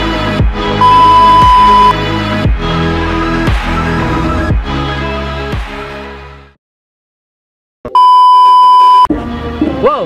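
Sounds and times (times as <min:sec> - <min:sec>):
background music: 0:00.0 - 0:06.6, 0:09.1 - 0:10.0
high test-tone beep: 0:00.8 - 0:01.9, 0:07.9 - 0:09.1.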